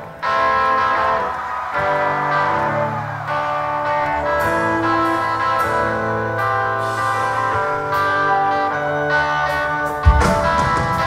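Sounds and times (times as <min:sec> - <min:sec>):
rock band ringing chords: 0:00.0 - 0:11.0.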